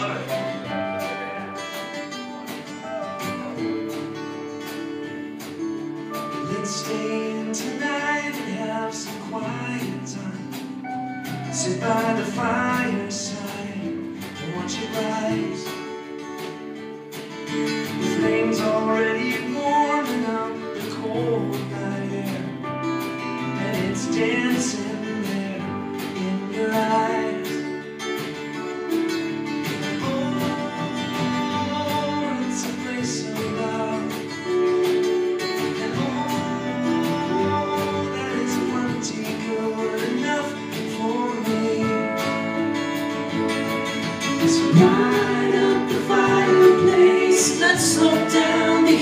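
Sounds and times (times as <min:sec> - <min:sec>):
acoustic guitar strummed: 0:00.0 - 0:49.0.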